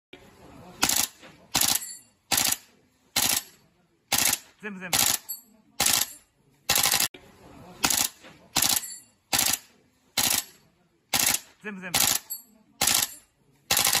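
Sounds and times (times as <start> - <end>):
airsoft rifle firing: 0.8 - 3.5, 4.1 - 5.2, 5.8 - 7.1, 7.8 - 12.2, 12.8 - 14.0.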